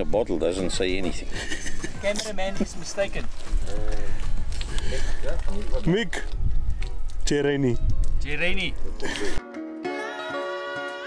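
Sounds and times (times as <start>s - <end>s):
plucked string music: 9.4s - 11.0s.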